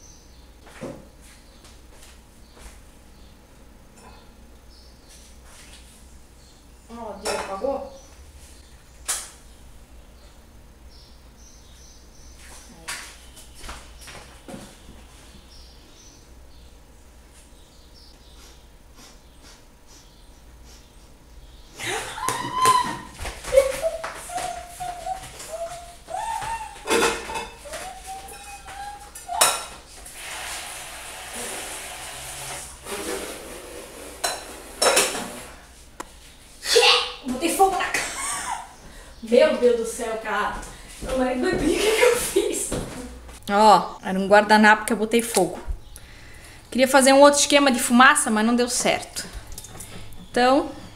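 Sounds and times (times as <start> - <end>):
pots and pans clattering: 26.8 - 27.7, 29.2 - 29.8, 34.2 - 35.5
cookware clatter: 26.9 - 27.6, 29.3 - 29.8
steady hiss: 30.0 - 36.2.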